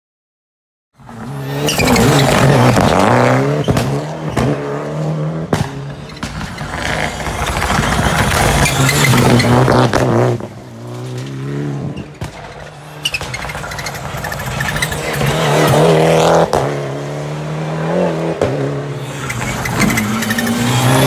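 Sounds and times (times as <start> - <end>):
rally car engine revving: 1.0 - 21.0
exhaust cracks: 5.5 - 11.4.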